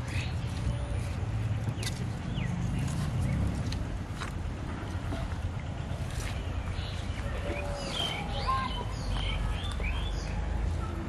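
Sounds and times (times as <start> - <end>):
low outdoor rumble: 0.0 - 11.0
bird chirps: 5.7 - 10.8.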